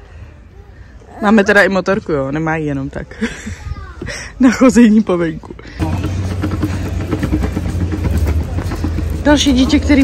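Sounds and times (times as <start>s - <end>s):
plastic wheels rolling over concrete: 5.2s - 10.0s.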